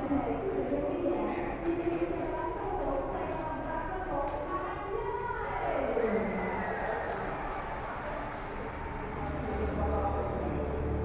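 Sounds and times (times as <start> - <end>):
faint music: 0.0 - 11.0
people talking at once: 0.0 - 11.0.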